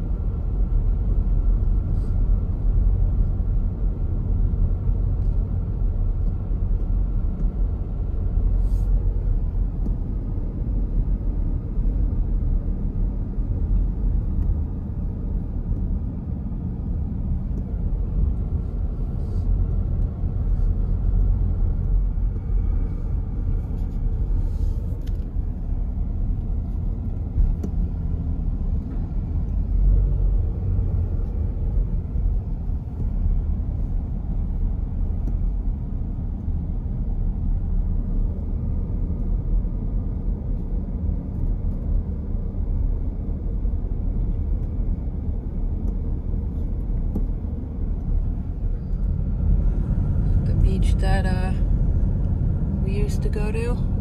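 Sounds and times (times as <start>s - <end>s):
car engine hum: 0.0s - 54.0s
tyre and road noise: 0.0s - 54.0s.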